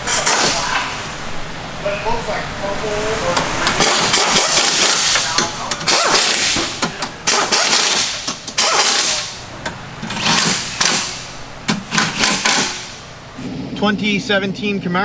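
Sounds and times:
impact wrench rattling: 3.7 - 9.4, 10.0 - 13.0.

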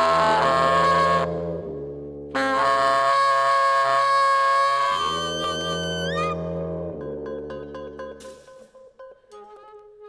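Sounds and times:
tenor saxophone long high note: 0.0 - 7.0
low tuba and cello notes: 0.0 - 10.0.

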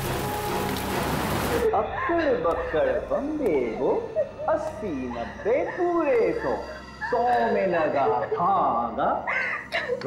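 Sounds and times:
woman whimpering and crying: 9.2 - 10.0.

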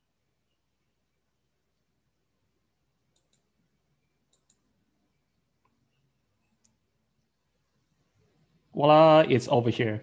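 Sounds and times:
faint computer mouse clicks: 3.1 - 3.6, 4.2 - 4.7, 5.6 - 6.8.

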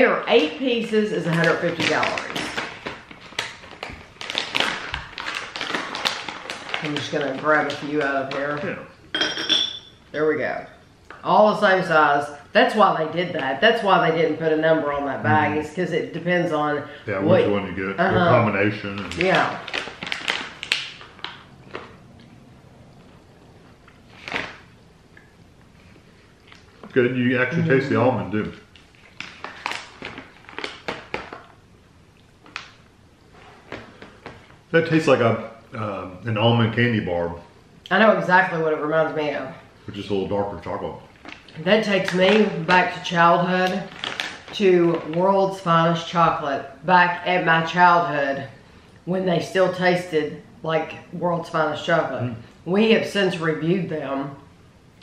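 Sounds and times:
plastic packaging crinkling: 1.2 - 8.8, 18.6 - 22.0, 23.9 - 24.7, 28.7 - 31.6, 41.1 - 45.3.

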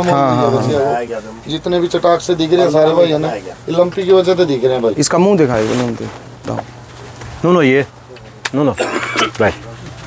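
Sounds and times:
man talking: 0.0 - 6.7.

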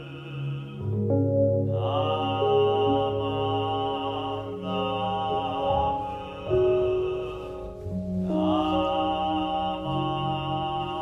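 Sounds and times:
ambient background music: 0.0 - 11.0
person chanting in long tones: 0.0 - 11.0.

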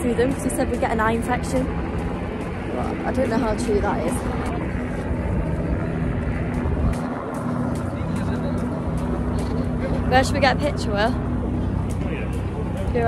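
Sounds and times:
low engine drone: 0.0 - 13.0
wind rumbling on microphone: 0.0 - 13.0.

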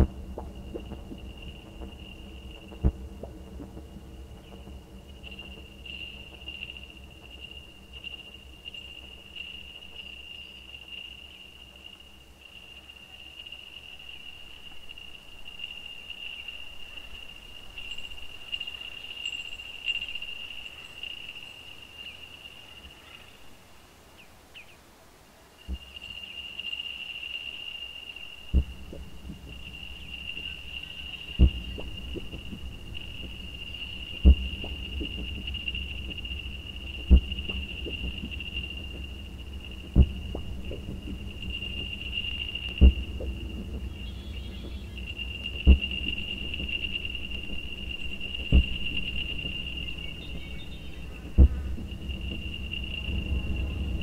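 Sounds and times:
low rumble: 0.0 - 11.0, 28.5 - 54.0
faint low drone: 0.0 - 21.1, 28.3 - 54.0
deep thumps: 31.4 - 54.0.

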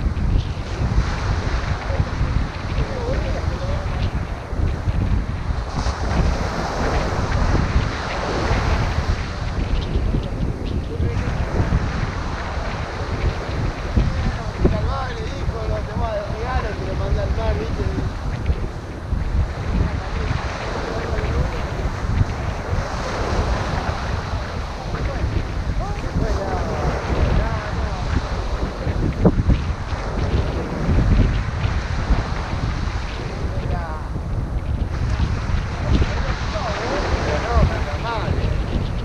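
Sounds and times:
surf breaking on beach: 0.0 - 39.0
wind buffeting microphone: 0.0 - 39.0.

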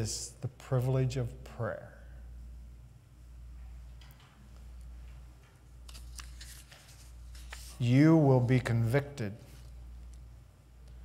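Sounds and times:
steady low hum: 0.0 - 11.0
book pages rustling and turning: 5.8 - 7.8.

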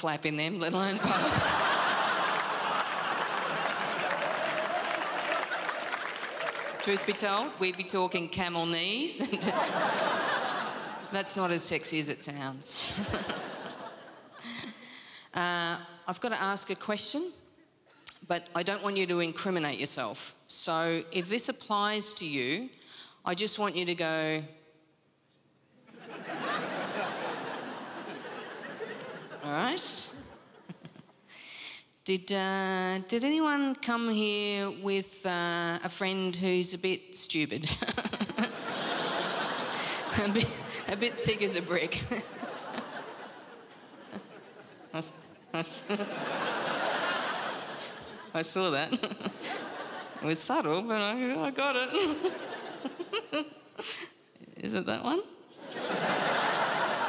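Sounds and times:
audience laughing: 0.7 - 7.8, 9.2 - 11.5, 12.8 - 14.8, 25.9 - 31.0, 37.8 - 50.3, 51.9 - 53.3, 55.6 - 57.0
audience applauding: 1.2 - 7.8.

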